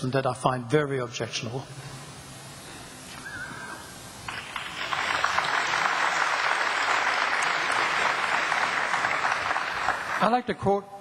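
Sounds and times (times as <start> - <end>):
audience applauding in hall: 4.2 - 10.5.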